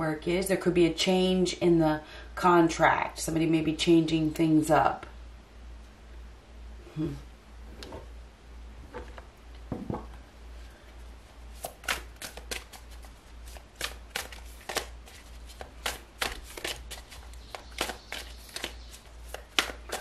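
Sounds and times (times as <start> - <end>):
low hum: 5.2 - 11.4
cards being shuffled: 11.5 - 20.0.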